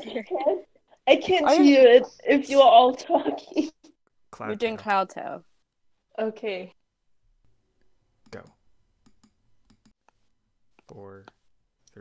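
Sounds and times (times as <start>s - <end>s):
person saying go: 4.4s - 5.0s.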